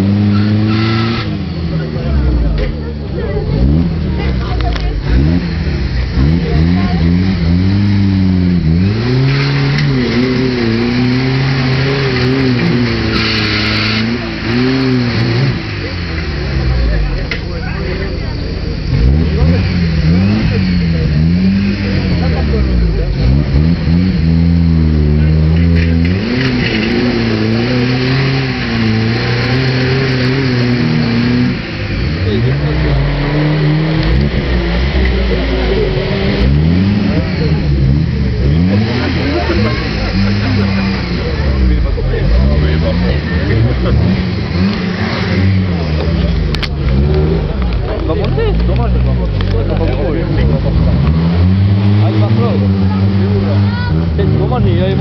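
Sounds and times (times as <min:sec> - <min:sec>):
engine revving under load: 0:00.0 - 0:55.0.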